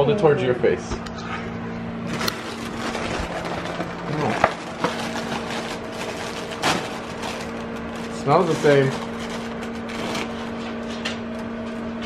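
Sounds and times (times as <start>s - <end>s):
steady low hum: 0.0s - 12.0s
plastic bag crinkling and tearing: 2.1s - 10.8s.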